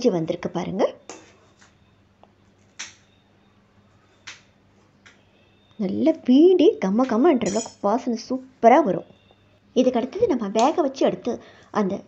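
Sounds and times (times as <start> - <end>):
metal ladle knocking on steel pot: 7.4 - 7.8.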